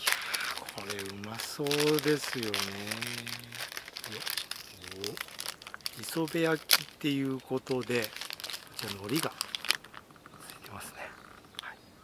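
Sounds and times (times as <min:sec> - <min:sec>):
person speaking: 0:00.0 - 0:11.3
paper wrapper crinkling: 0:00.0 - 0:11.6.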